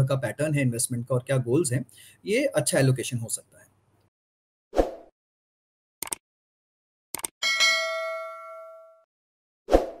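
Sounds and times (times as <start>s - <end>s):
notification bell ding: 7.4s - 9.1s.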